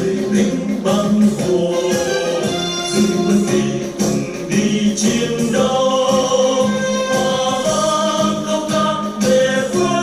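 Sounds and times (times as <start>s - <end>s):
group singing march song: 0.0s - 10.0s
instrumental backing music: 0.0s - 10.0s.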